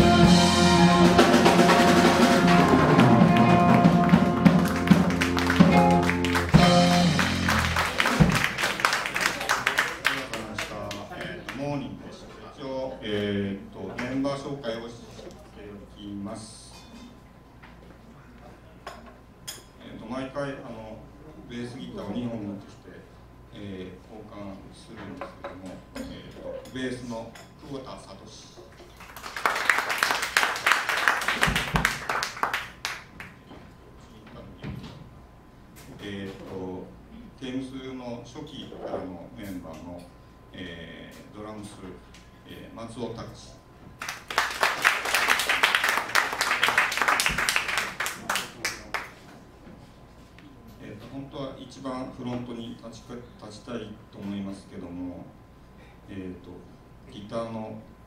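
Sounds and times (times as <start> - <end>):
small jazz band playing: 0.0 - 10.2
audience clapping: 1.5 - 11.6, 28.8 - 33.4, 44.0 - 49.2.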